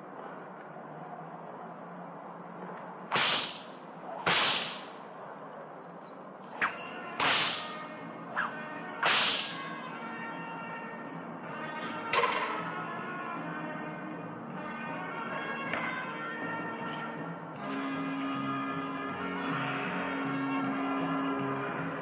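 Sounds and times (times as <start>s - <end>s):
whip cracking: 3.1s - 5.0s, 6.6s - 7.8s, 8.4s - 9.7s
whip swishing: 3.1s - 5.0s, 6.6s - 7.8s, 8.4s - 9.7s.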